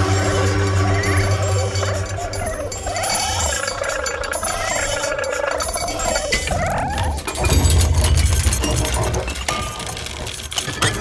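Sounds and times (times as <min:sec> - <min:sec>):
wavering pitched tones: 0:00.0 - 0:07.6
low drone: 0:00.0 - 0:09.4
clinks: 0:00.0 - 0:11.0.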